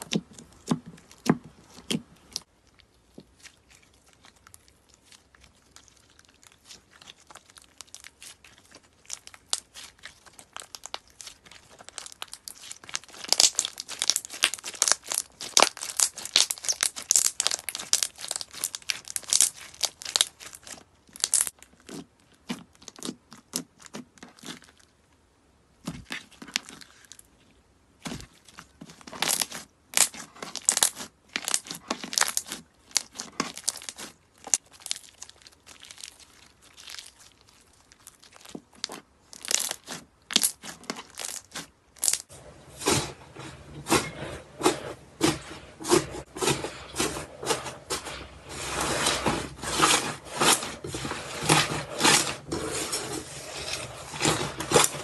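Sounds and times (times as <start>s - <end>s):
slime crackling and popping: 0.0s - 24.8s, 28.0s - 43.0s.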